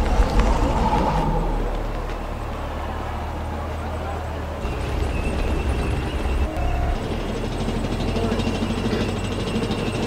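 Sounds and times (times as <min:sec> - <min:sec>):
low vehicle-like rumble: 0:00.0 - 0:10.0.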